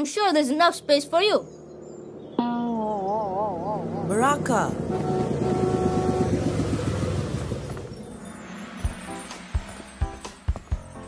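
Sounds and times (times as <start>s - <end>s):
steady horn tone: 4.8s - 6.7s.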